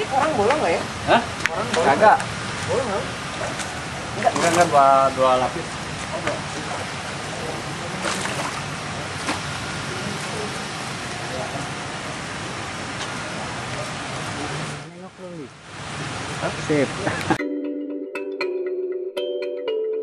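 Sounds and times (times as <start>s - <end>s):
steady outdoor hiss: 0.0s - 17.4s.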